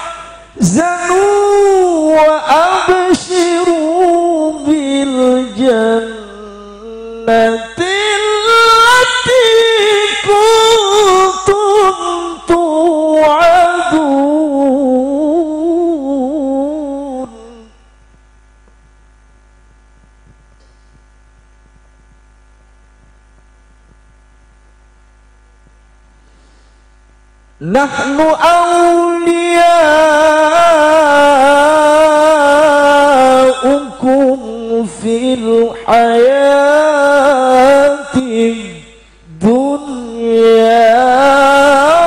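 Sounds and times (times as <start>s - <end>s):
man reciting melodically: 0.0s - 17.9s, 27.6s - 42.0s
electrical mains hum: 0.0s - 42.0s.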